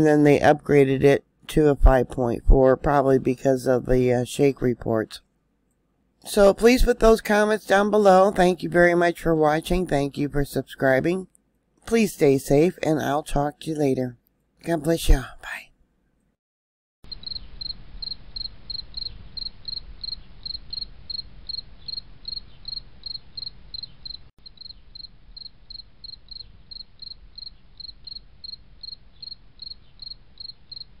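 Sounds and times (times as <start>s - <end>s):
cricket chirping: 17.1s - 31.0s.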